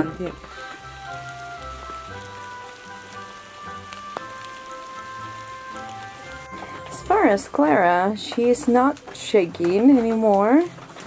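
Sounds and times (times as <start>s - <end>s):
music of long held chords: 0.0s - 8.4s
steady rain falling: 0.0s - 11.0s
water drips: 0.0s - 11.0s.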